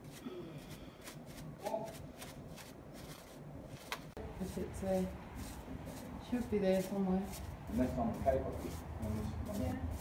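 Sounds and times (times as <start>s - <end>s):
brush scrubbing rough stone: 0.0s - 10.0s.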